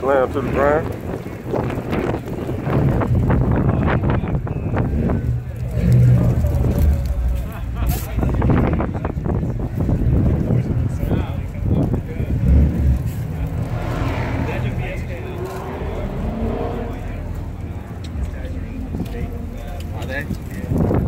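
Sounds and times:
steady low rumble: 0.9s - 21.0s
background voices: 2.2s - 21.0s.

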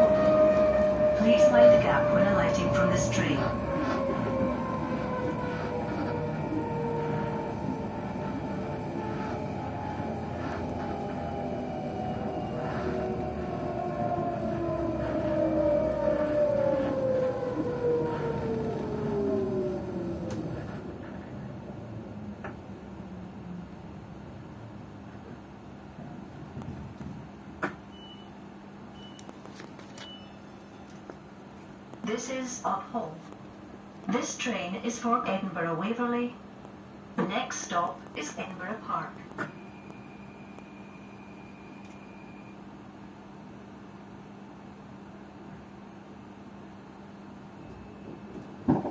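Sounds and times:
train motor whine: 0.0s - 23.7s, 37.7s - 42.6s.

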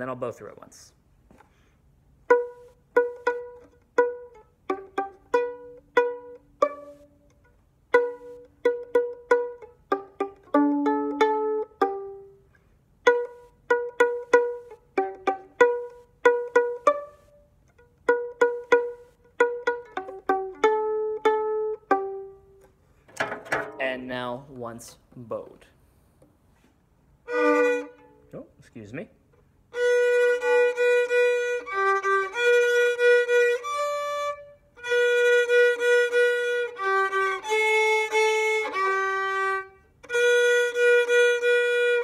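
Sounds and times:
violin plucked pizzicato: 2.2s - 22.8s, 27.2s - 28.4s, 29.7s - 42.0s.

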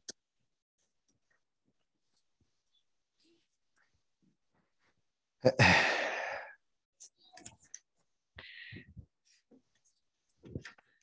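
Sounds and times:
man sighing: 5.4s - 6.6s.

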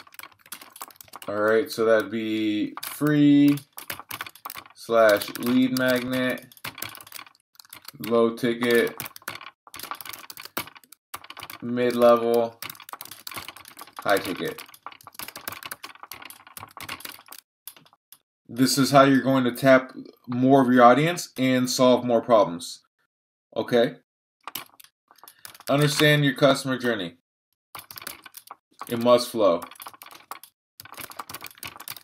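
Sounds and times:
rapid keyboard typing: 0.0s - 18.2s, 24.4s - 26.3s, 27.8s - 32.0s.

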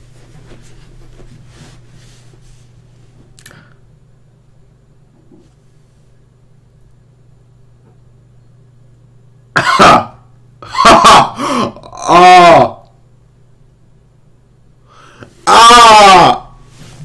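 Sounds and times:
low steady hum: 0.0s - 17.0s
person shouting loud outbursts: 11.9s - 12.8s, 15.4s - 16.5s.

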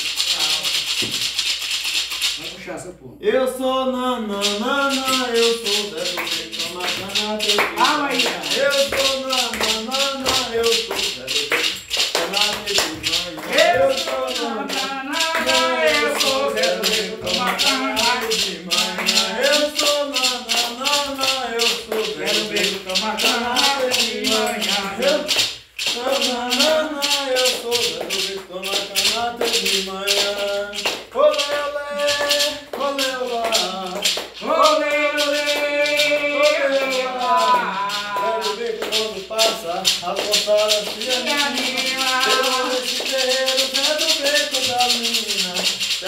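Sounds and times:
hand rattle shaking: 0.0s - 2.7s, 4.2s - 46.0s
person singing a chant: 3.6s - 46.0s.

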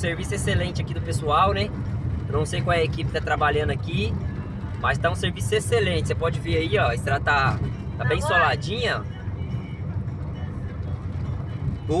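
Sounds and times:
vehicle engine and tyres rumbling: 0.0s - 12.0s
person speaking: 8.0s - 8.7s.

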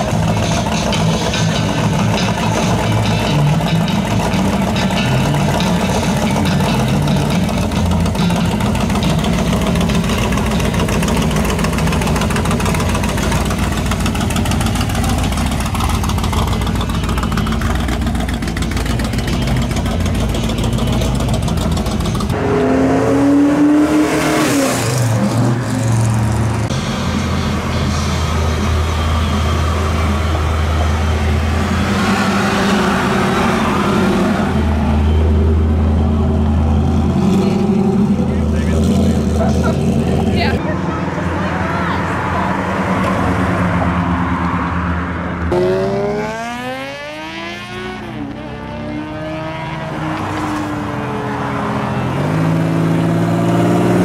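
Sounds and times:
car engine revving and idling: 0.0s - 54.0s
pickup engine rolling past: 0.0s - 54.0s.

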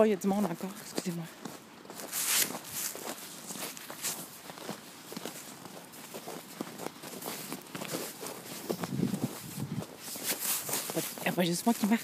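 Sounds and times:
footsteps crunching on snow: 0.0s - 12.0s
loud rustle: 5.2s - 12.0s.

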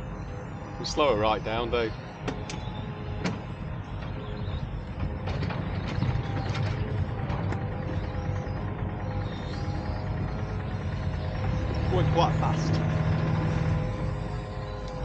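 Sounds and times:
boat engine rumble: 0.0s - 15.0s.

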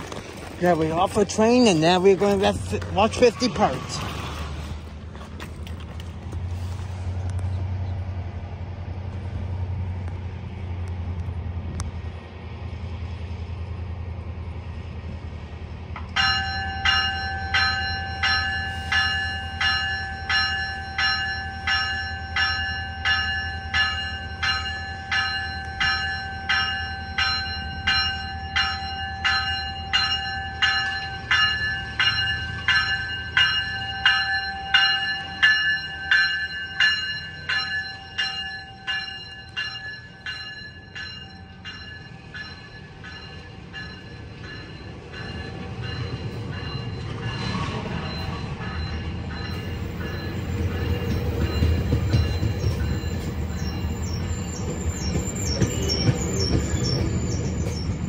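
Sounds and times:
moving train rumble: 0.0s - 58.0s
train bell ringing: 0.6s - 4.0s, 16.0s - 58.0s.

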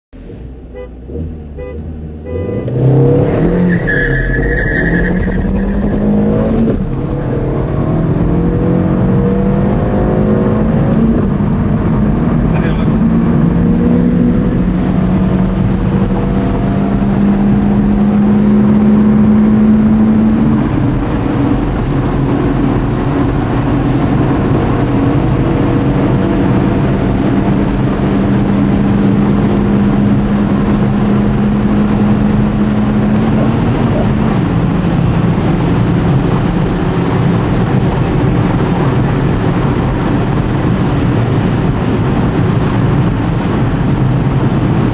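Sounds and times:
wind and road noise: 0.1s - 44.9s
car engine accelerating: 0.2s - 44.9s.

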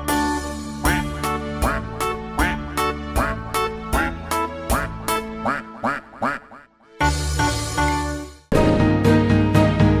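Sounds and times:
children's song music: 0.0s - 10.0s
duck quacks: 0.9s - 6.8s.

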